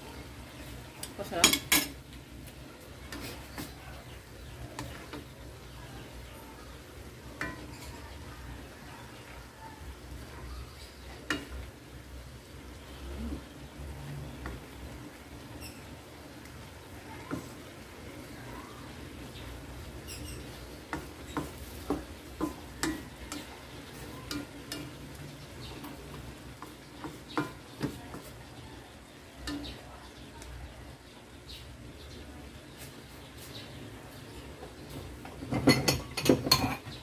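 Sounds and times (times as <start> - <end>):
soft sizzle: 0.0 - 37.0
spatula stirring vegetables in wok: 0.1 - 37.0
spatula tapping pan: 4.6 - 5.5, 7.2 - 8.1, 11.1 - 11.7, 15.6 - 18.4, 19.2 - 29.8.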